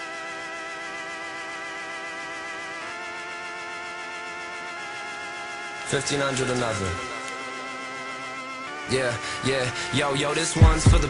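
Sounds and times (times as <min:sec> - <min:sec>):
sustained synthesizer chord: 0:00.0 - 0:11.0.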